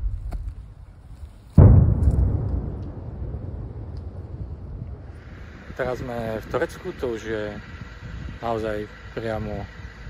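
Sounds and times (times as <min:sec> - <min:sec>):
explosion boom with rumble: 0:01.6 - 0:06.6.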